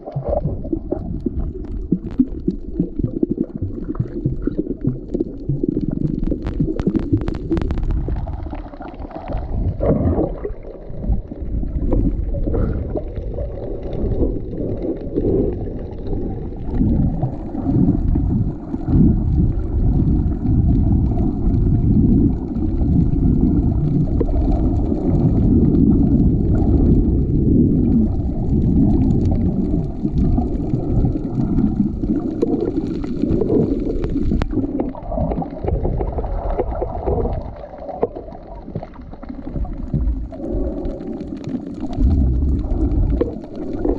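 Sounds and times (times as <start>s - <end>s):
underwater rumbling and gurgling: 0.0s - 43.9s.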